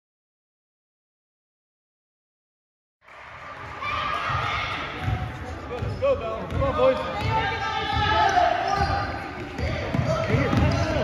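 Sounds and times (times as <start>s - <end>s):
players and spectators voices: 3.1s - 11.0s
basketball bouncing on gym floor: 5.0s - 11.0s.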